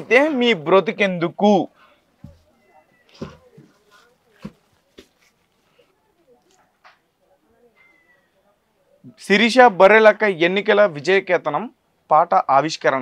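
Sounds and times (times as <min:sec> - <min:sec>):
faint rustling: 0:01.7 - 0:07.1.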